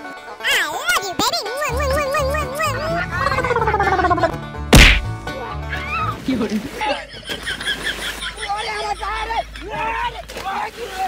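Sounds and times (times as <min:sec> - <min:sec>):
background music: 0:00.0 - 0:07.1
loud whack: 0:04.7 - 0:05.2.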